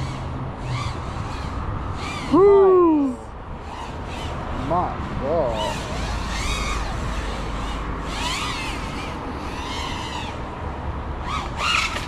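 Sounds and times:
drone motors whining: 0.0 - 12.0.

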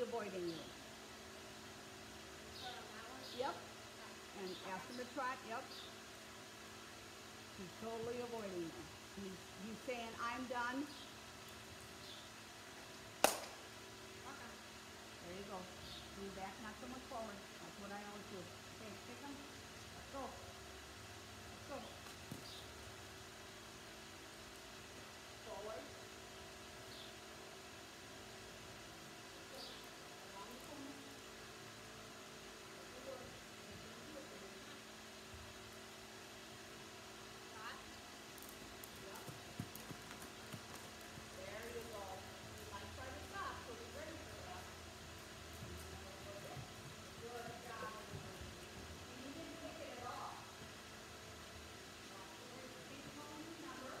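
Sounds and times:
horse hoofbeats on sand: 38.4 - 43.4, 44.2 - 49.7
distant indistinct voices: 38.8 - 50.8.

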